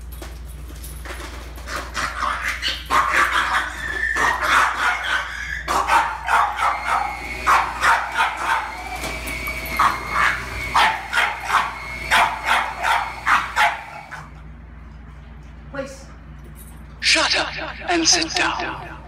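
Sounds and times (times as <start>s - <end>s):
dog barking: 2.1s - 8.9s, 9.8s - 14.3s.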